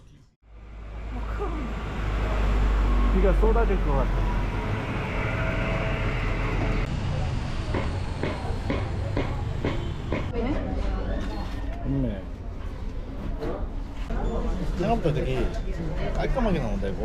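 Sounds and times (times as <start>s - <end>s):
low rumble of traffic: 0.4s - 11.0s.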